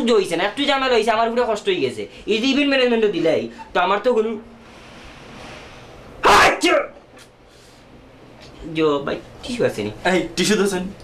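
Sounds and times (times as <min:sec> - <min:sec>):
drawn-in breath: 0:04.6 - 0:06.2, 0:07.4 - 0:08.0.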